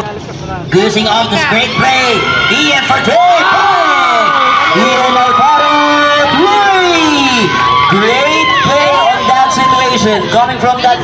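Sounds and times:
crowd cheering and shouting: 0.8s - 11.0s.

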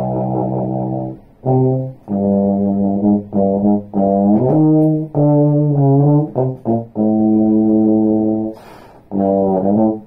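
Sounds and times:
bass trombone low note: 0.0s - 10.0s
quick breath in: 8.5s - 9.1s.

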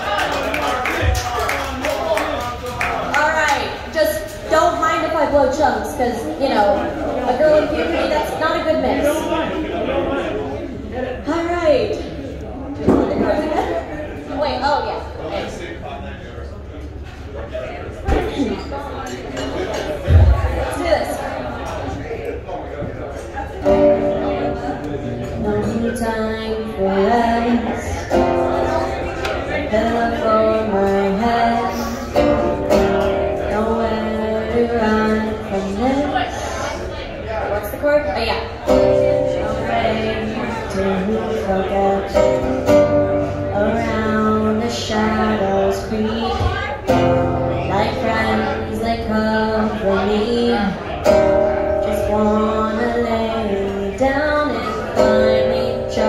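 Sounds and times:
classical guitar playing: 23.6s - 36.0s, 38.6s - 56.0s
woman singing: 25.4s - 29.0s, 29.6s - 36.5s, 39.0s - 50.8s, 51.8s - 56.0s.

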